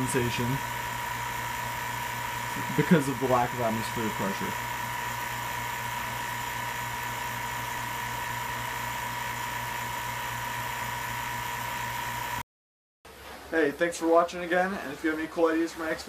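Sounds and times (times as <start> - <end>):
vacuum pump running: 0.0 - 12.4.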